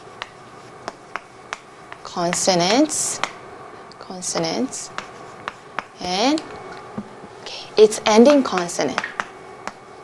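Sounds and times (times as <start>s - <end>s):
chalk tapping on chalkboard: 0.0s - 3.4s, 4.4s - 6.0s, 8.5s - 9.8s.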